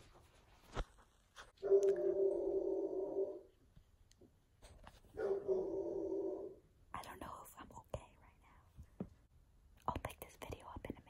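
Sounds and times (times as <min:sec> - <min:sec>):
woman half-whispering: 0:07.0 - 0:08.8, 0:09.8 - 0:11.0.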